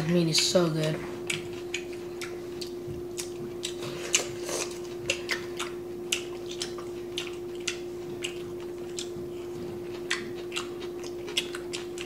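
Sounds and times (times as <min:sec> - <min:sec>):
people chewing food: 0:00.0 - 0:12.0
steady hum: 0:00.0 - 0:12.0
mouth clicks and smacks: 0:01.3 - 0:09.3.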